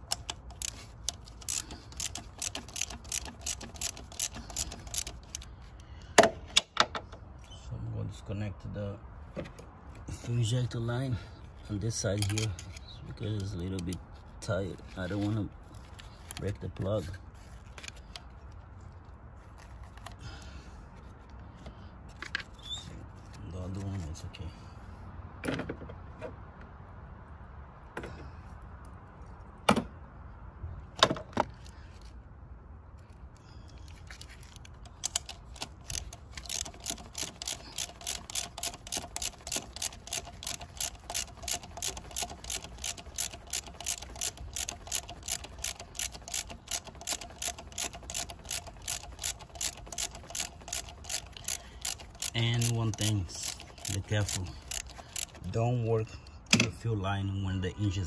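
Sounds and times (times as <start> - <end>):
ratchet wrench clicking: 0.0 - 5.9, 12.1 - 14.0, 33.8 - 55.6.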